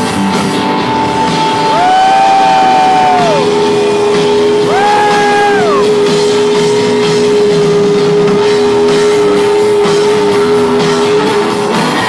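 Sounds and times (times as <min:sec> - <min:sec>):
live rock band playing: 0:00.0 - 0:12.0
steady held tone: 0:01.0 - 0:11.7.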